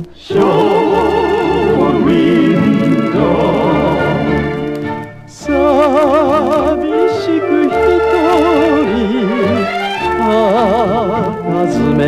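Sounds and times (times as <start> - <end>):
steel guitar sliding melody: 0.4 - 9.4.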